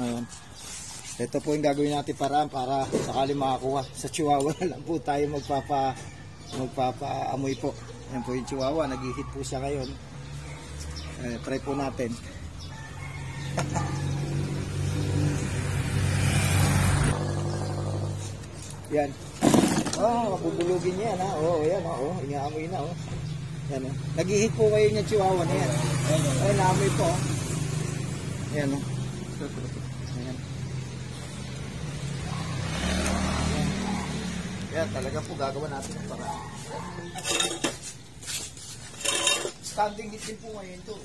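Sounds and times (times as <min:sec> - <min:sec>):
vehicle engine hum: 0:12.4 - 0:39.5.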